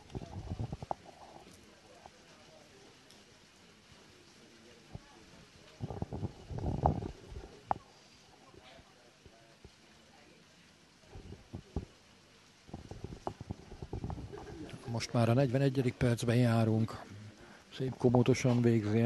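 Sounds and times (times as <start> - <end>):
muffled bursts of noise: 0.0 - 19.0.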